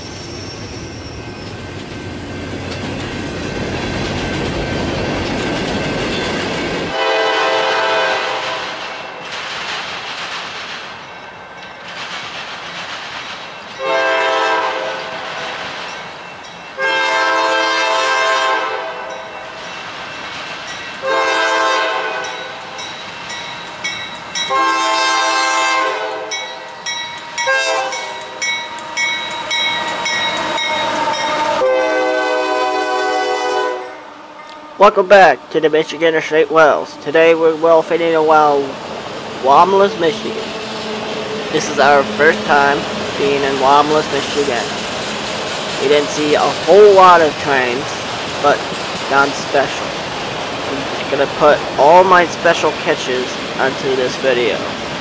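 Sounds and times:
rail cars clattering: 0.0s - 55.0s
train wheels rumbling: 0.0s - 55.0s
locomotive air horn blasts: 6.9s - 8.8s, 13.8s - 15.5s, 16.8s - 19.2s, 21.0s - 22.4s, 24.5s - 26.4s, 27.4s - 28.1s, 31.1s - 35.4s.

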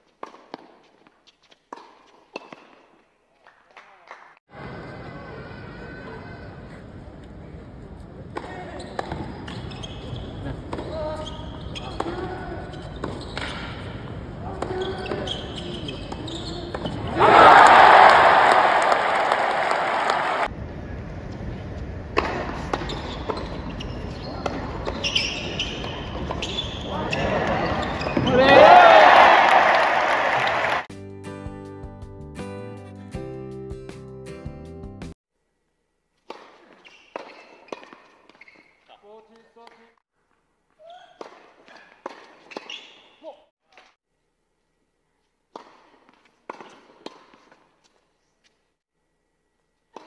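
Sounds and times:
crowd cheering and applause: 17.1s - 20.5s, 28.3s - 30.9s
tennis ball strikes: 36.2s - 38.4s, 45.5s - 47.7s.

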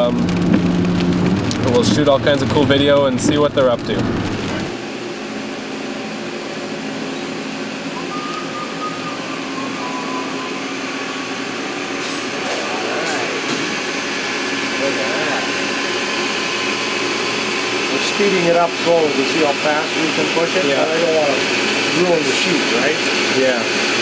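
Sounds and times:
milling machines humming and whirring: 1.5s - 24.0s.

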